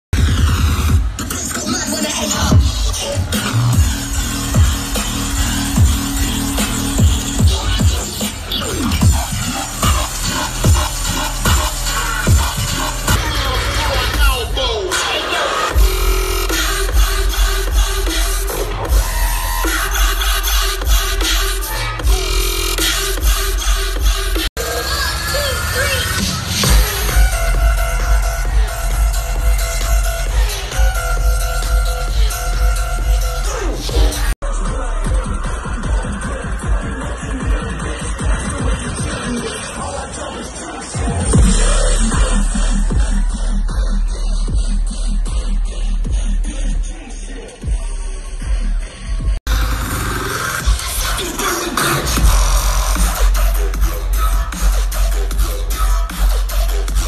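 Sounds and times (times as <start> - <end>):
heavy pulsing bass line: 0.1 - 57.0
loud dubstep music: 0.1 - 57.0.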